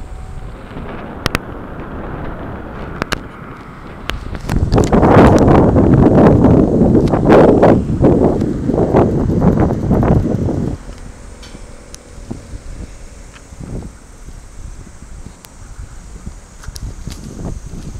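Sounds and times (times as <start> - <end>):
faint outdoor background: 0.0 - 17.9
wind buffeting microphone: 0.0 - 17.9.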